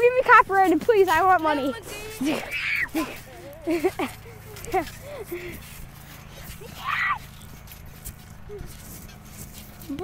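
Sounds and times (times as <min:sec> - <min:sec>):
faint voices of boys playing: 0:00.0 - 0:10.0.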